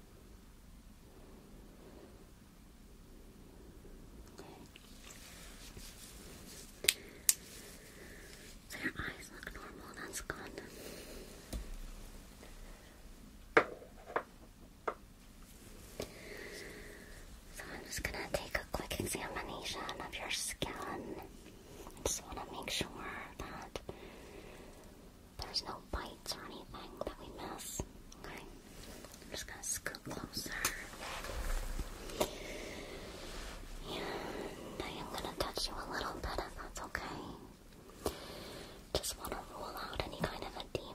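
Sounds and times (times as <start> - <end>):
person whispering: 8.7 - 10.7, 17.5 - 21.3, 22.0 - 23.9, 25.4 - 28.6, 29.3 - 31.3, 33.8 - 37.6, 38.9 - 40.9.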